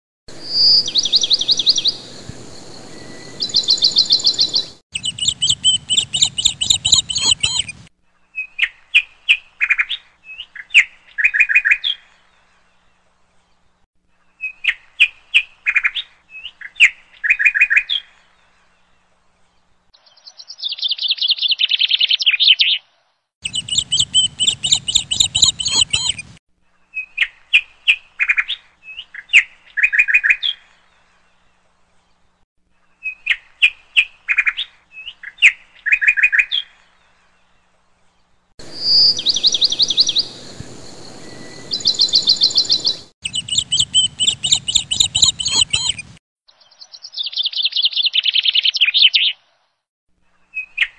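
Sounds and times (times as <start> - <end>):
bird trill: 0.4 - 8.7, 23.4 - 26.4, 38.6 - 46.2
bird chirping: 0.4 - 12.6, 23.4 - 31.2, 33.0 - 49.4.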